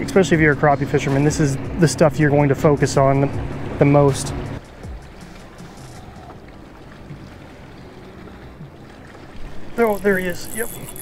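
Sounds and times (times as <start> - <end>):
low wind: 0.0 - 11.0
water noise around boat: 0.0 - 11.0.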